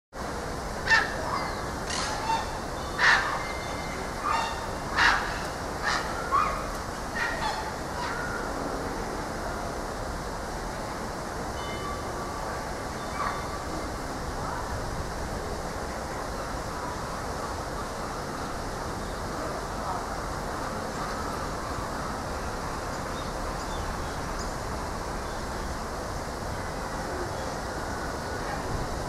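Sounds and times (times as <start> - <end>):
steady background noise: 0.2 - 29.0
monkeys giving sharp calls: 0.9 - 8.4.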